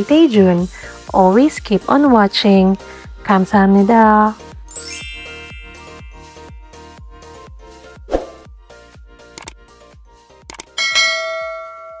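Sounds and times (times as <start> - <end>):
soft background music: 0.0 - 11.6
bright bell ding: 4.7 - 6.7, 10.8 - 12.0
cursor clicks: 9.4 - 9.6, 10.5 - 10.8.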